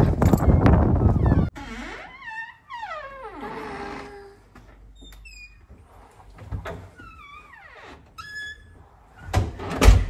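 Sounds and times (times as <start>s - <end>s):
door creaking open: 0.0s - 10.0s.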